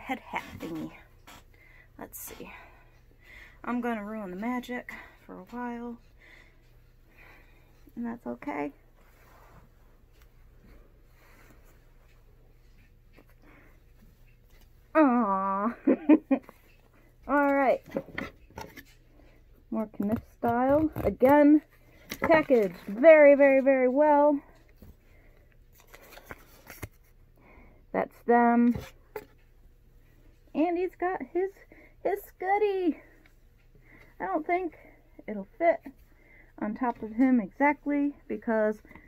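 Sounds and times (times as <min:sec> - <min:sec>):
low steady room hum: 0:00.0 - 0:39.0
soft rustling of faux fur: 0:08.0 - 0:13.4
handling twine and card: 0:25.7 - 0:27.1.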